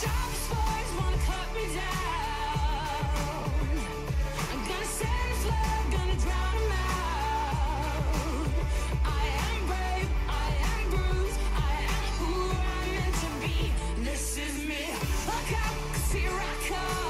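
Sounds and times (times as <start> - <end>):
upbeat pop song with vocals: 0.0 - 17.0.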